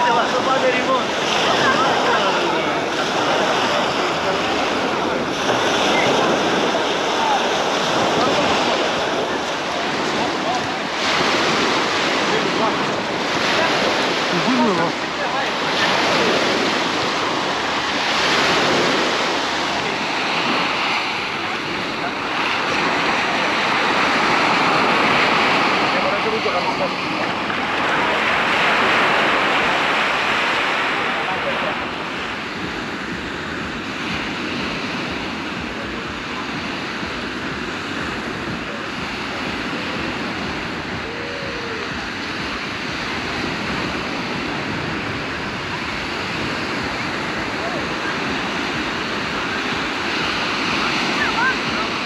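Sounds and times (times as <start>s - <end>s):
faint voices of beachgoers: 0.0s - 52.0s
small waves washing on sand: 0.0s - 52.0s.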